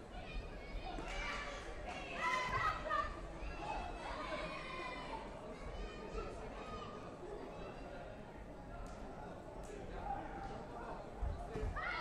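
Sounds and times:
din of chatter: 0.0 - 12.0.

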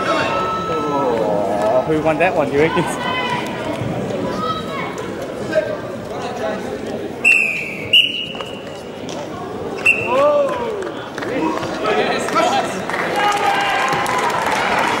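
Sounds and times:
mix of voices: 0.0 - 13.4
shrill whistle tones: 7.2 - 8.8, 9.8 - 10.2.

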